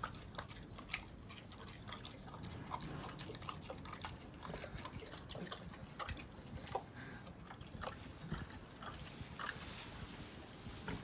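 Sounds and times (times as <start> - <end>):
pig smacking mouth eating: 0.0 - 9.7.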